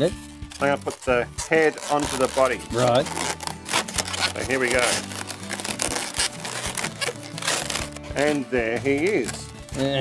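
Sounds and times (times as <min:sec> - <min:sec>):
background music: 0:00.0 - 0:10.0
balloons squeaking and rubbing: 0:00.0 - 0:10.0.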